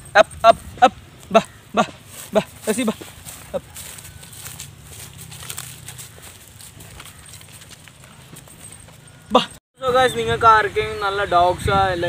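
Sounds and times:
footsteps crunching on dry leaves: 0:01.2 - 0:09.4.

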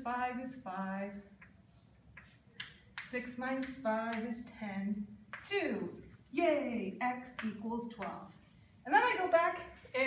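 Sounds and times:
chalk tapping on chalkboard: 0:01.3 - 0:04.3.

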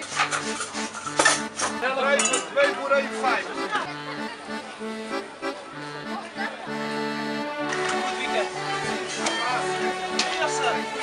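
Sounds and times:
accordion music: 0:00.0 - 0:11.0.

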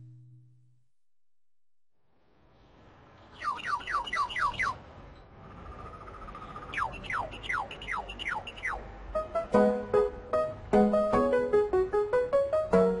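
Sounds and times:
bird-like falling chirps: 0:03.4 - 0:04.8.

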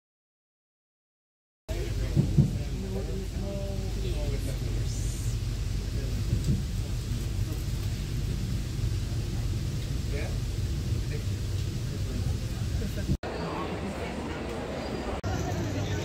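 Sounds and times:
steady low rumble: 0:01.7 - 0:14.0
faint voices: 0:01.7 - 0:16.0.

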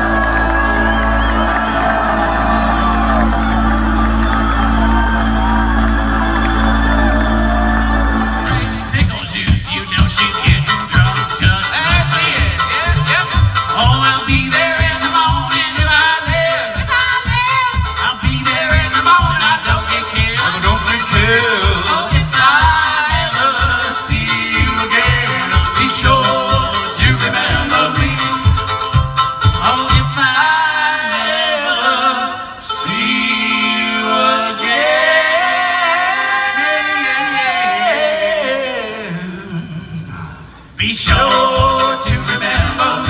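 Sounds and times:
pulsing bass: 0:00.0 - 0:30.2, 0:41.1 - 0:43.0
string band music: 0:00.0 - 0:38.0, 0:40.5 - 0:43.0.

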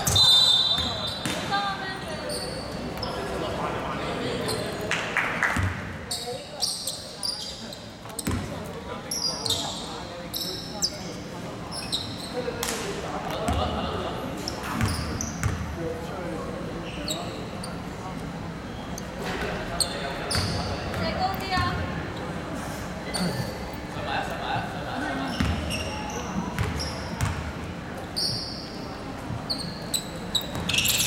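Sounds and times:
shoe squeaks: 0:00.0 - 0:03.4, 0:04.3 - 0:04.8, 0:06.1 - 0:12.5, 0:14.4 - 0:15.6, 0:16.8 - 0:17.9, 0:19.8 - 0:21.1, 0:25.2 - 0:27.4, 0:28.0 - 0:31.0.

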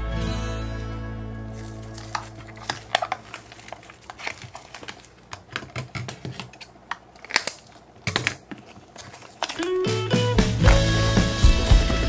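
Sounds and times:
balloon rubber tearing and crackling: 0:01.6 - 0:12.0
music tones: 0:09.6 - 0:12.0.

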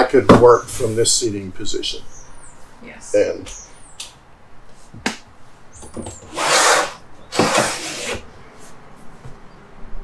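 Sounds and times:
window shade whirring rasps: 0:06.0 - 0:08.2
window shade click: 0:06.2 - 0:08.2.

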